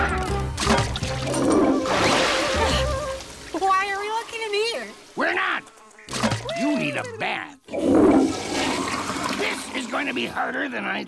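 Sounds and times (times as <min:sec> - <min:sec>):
toilet flushing: 0:00.7 - 0:04.0, 0:07.7 - 0:10.6.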